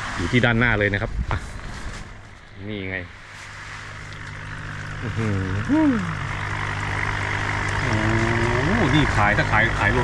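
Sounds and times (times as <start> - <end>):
low hum: 3.1 - 10.0.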